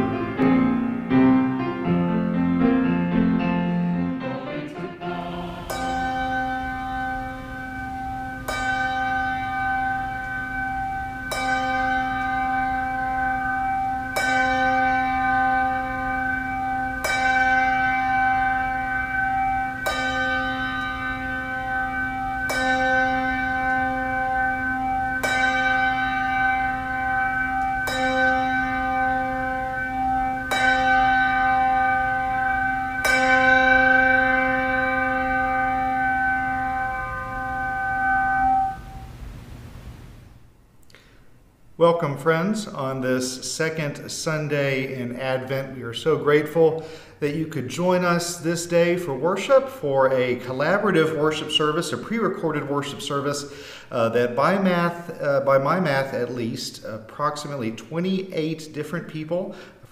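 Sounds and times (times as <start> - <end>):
handbell chiming: 5.2 - 39.0.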